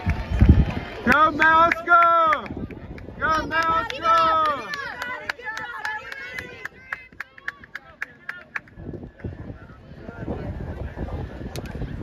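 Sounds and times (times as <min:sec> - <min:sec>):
people clapping: 0:00.0 - 0:09.4.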